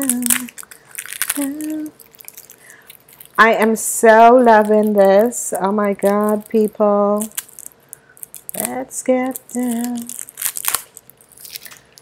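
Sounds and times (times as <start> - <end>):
packaging crinkling and rustling: 0.0 - 3.5, 4.2 - 12.0.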